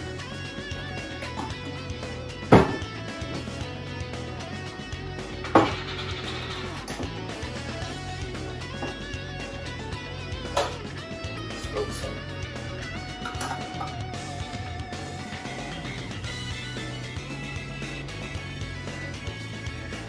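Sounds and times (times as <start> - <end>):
background guitar music: 0.0 - 20.0.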